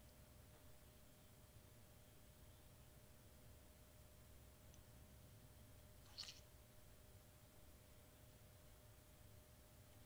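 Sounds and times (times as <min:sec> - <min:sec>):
faint syringe squelch: 0:06.0 - 0:06.5.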